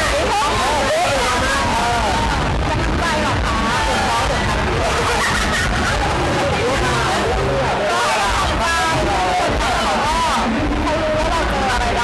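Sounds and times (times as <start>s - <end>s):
crowd din: 0.0s - 12.0s
voices talking over one another: 0.0s - 12.0s.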